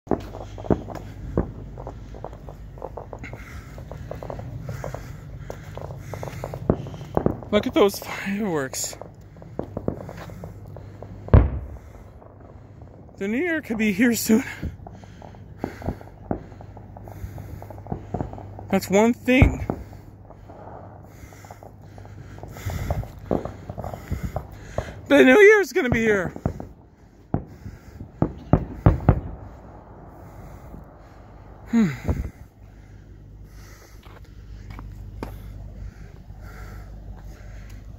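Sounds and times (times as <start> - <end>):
distant fireworks popping and crackling: 0.1 - 37.9
steady low rumble: 0.1 - 37.9.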